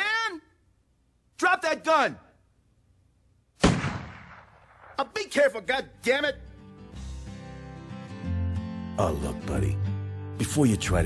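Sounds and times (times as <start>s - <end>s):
handgun shot with echo: 3.6s - 5.0s.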